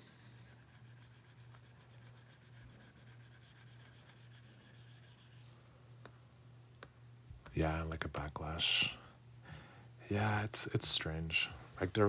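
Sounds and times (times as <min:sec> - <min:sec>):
stylus rasping on tablet screen: 0:00.0 - 0:05.6
low steady hum: 0:00.0 - 0:12.0.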